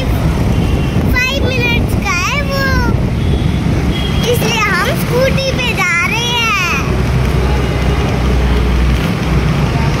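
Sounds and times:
wind rumble on microphone: 0.0s - 3.9s.

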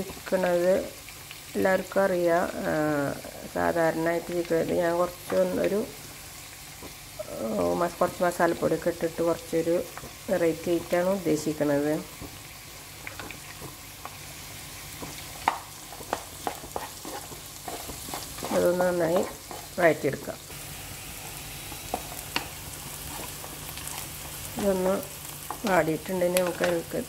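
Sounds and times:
onions sizzling in hot oil: 0.0s - 27.0s
spatula stirring and scraping: 14.8s - 20.2s, 21.1s - 25.8s.

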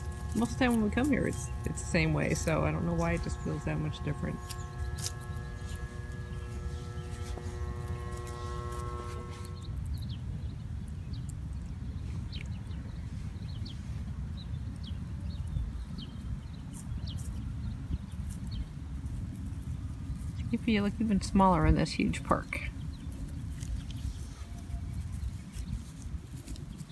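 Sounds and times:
steady multi-pitch drone: 0.0s - 10.6s
low rumble on microphone: 0.0s - 26.9s.

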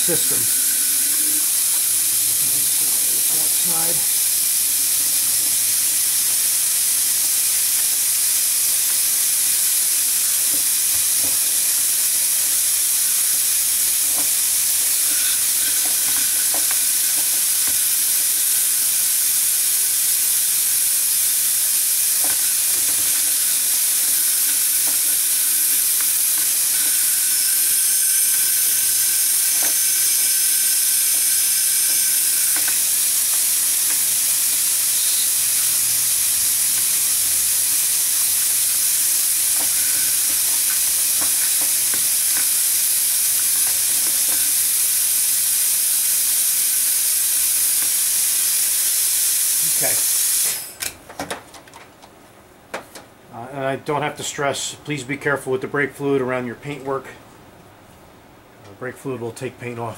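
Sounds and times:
compressed air hissing: 0.0s - 50.8s.

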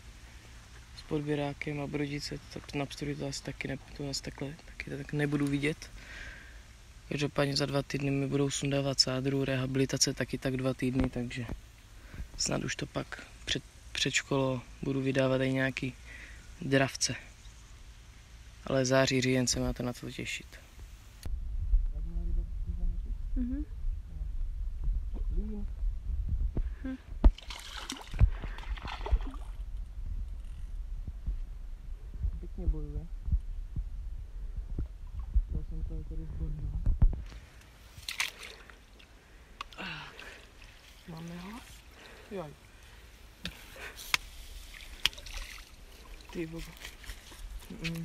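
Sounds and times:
fish thrashing and splashing water: 27.3s - 29.7s, 38.0s - 38.9s, 44.2s - 47.7s.

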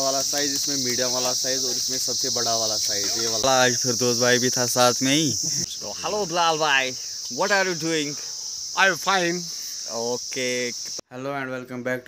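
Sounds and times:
high-pitched insect drone: 0.0s - 11.0s
men talking: 0.0s - 12.0s.

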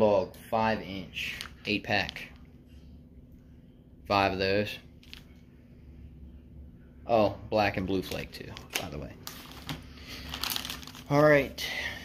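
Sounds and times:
plastic packaging crinkling: 8.0s - 11.5s.

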